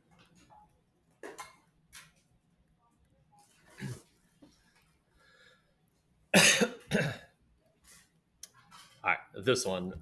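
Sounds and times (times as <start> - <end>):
person coughing: 6.3 - 7.4.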